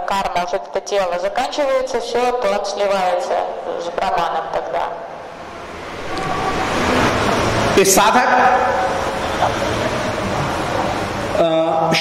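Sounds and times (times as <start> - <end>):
steady rushing noise: 4.7 - 11.4.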